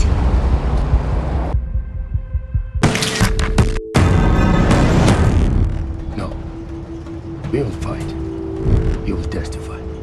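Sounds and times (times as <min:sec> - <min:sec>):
throbbing bass pulse: 0:00.0 - 0:02.8.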